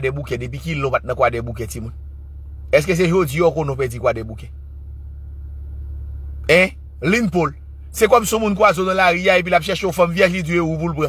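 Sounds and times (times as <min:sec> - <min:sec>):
man talking: 0:00.0 - 0:01.9, 0:02.8 - 0:04.5, 0:06.5 - 0:11.0
steady low hum: 0:00.0 - 0:11.0.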